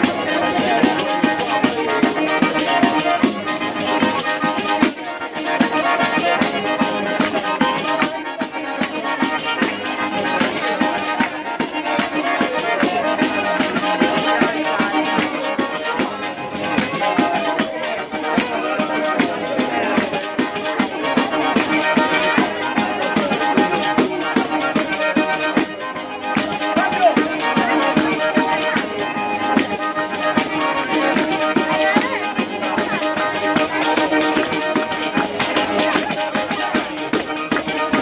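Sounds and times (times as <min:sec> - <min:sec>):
button accordion dance tune: 0:00.0 - 0:38.0
frame drum beat: 0:00.0 - 0:38.0.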